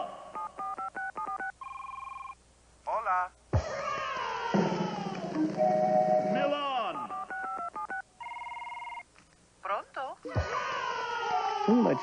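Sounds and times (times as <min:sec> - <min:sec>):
telephone keypad dialing beeps: 0:00.4 - 0:02.4, 0:07.0 - 0:09.0
telephone ring: 0:00.4 - 0:02.4, 0:05.4 - 0:09.1.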